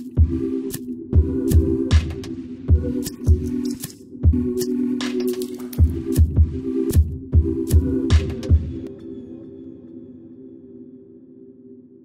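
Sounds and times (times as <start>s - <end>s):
light clicking percussion: 3.0s - 4.0s.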